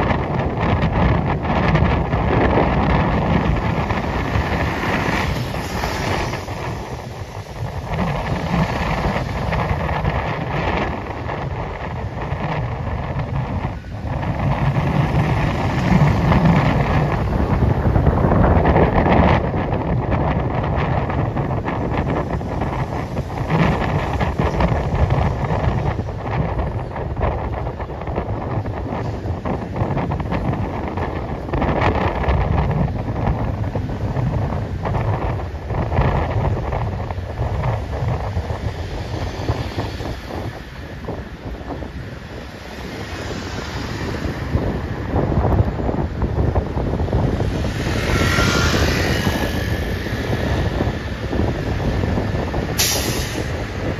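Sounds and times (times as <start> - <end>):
city street traffic passing: 0.0 - 53.9
wind buffeting microphone: 0.0 - 53.9.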